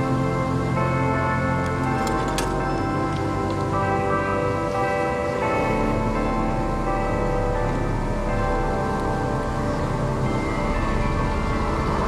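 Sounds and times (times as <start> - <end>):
organ chords: 0.0 - 12.0.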